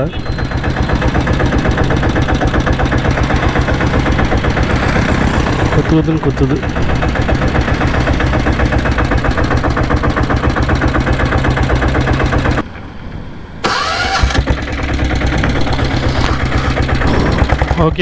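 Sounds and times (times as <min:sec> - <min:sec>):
motorcycle diesel engine running: 0:00.0 - 0:18.0.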